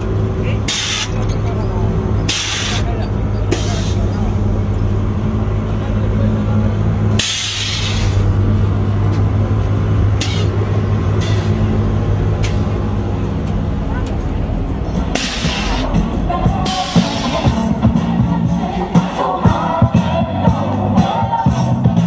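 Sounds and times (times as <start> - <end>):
engine idling hum: 0.0 - 22.0
air suspension hissing: 0.6 - 4.4, 7.1 - 8.5, 10.2 - 11.8, 14.8 - 17.8.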